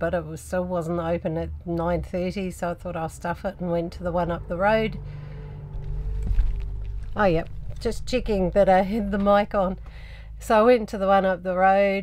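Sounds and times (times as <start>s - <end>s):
steady low hum: 0.0s - 12.0s
microphone handling rumble: 5.6s - 10.0s.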